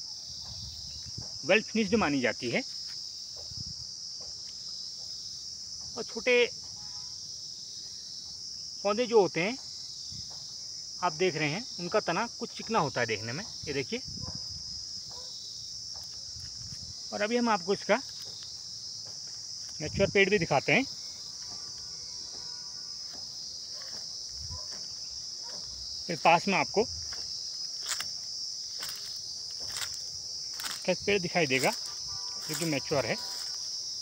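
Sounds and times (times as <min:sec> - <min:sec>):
shrill insect chorus: 0:00.0 - 0:34.0.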